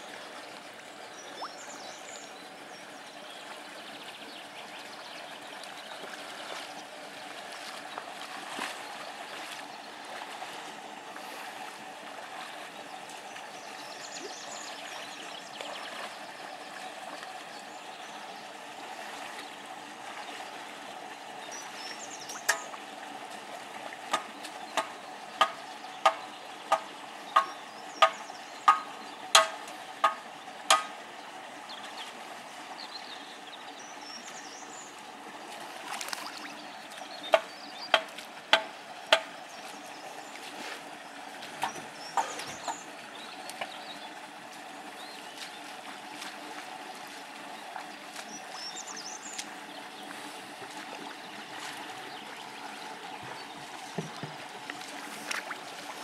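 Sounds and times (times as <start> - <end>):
outdoor background noise: 0.0 - 56.0.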